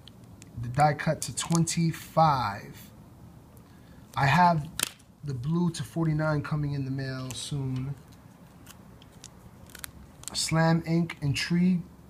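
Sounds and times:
plastic card holders clicking: 1.4 - 1.7, 4.6 - 5.0, 7.2 - 10.4.

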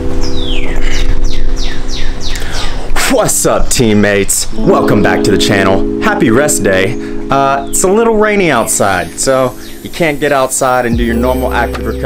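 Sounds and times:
electronic keyboard chord: 0.0 - 3.0, 4.0 - 12.0
bird chirping: 0.0 - 12.0.

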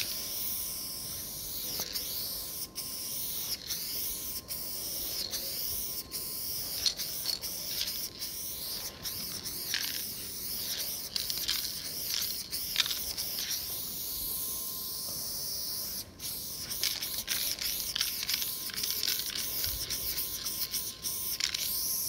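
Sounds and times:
spray paint can hissing: 0.0 - 22.0.

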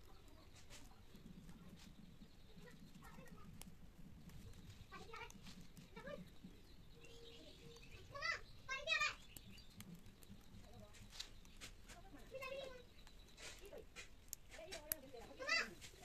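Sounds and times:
distant wavering calls: 5.9 - 9.9.

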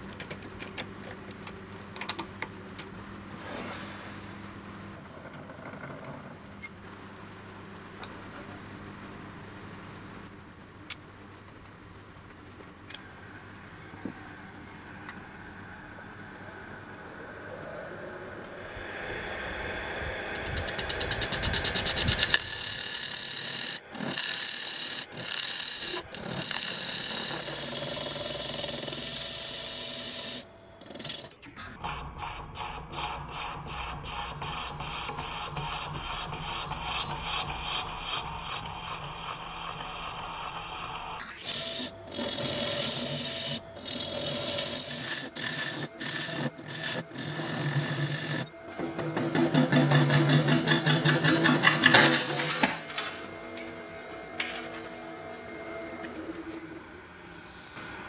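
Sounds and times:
wood lathe spinning: 13.0 - 31.3, 41.4 - 57.1
gouge cutting and scraping: 20.4 - 31.3, 41.4 - 52.8.

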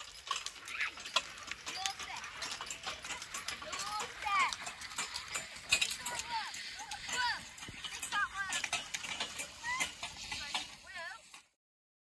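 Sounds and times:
horse hoof steps: 0.0 - 11.4
harness and plough clinking: 0.0 - 11.6.

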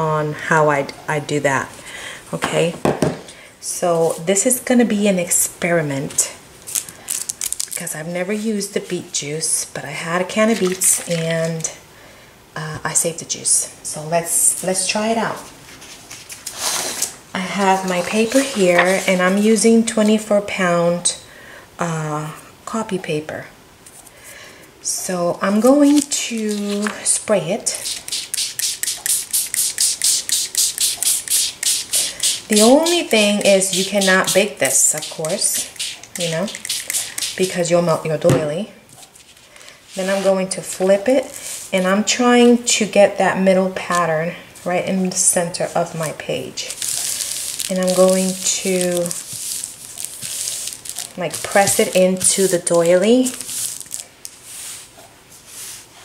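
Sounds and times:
hands rubbing damp paper: 10.4 - 11.7, 15.3 - 19.6, 25.7 - 37.7, 39.0 - 41.9, 44.6 - 56.0
spray bottle spraying: 25.9 - 26.9, 27.7 - 37.7, 46.7 - 54.8.

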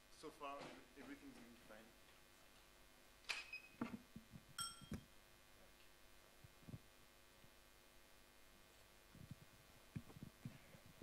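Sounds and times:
metallic dings: 4.6 - 5.0.

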